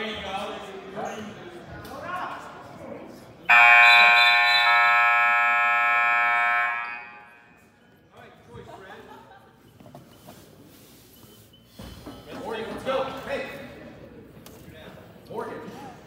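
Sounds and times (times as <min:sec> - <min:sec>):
scoreboard horn long blast: 0:03.5 - 0:07.6.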